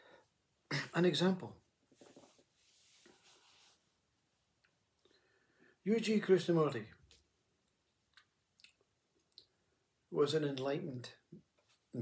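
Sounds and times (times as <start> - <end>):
man speaking: 0.7 - 1.6, 5.8 - 7.0
man breathing softly: 5.0 - 5.8
mouth clicks: 8.1 - 9.6.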